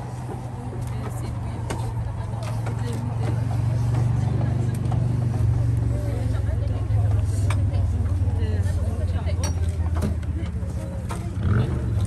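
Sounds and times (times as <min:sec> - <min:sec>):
quiet murmuring voices: 0:00.0 - 0:12.0.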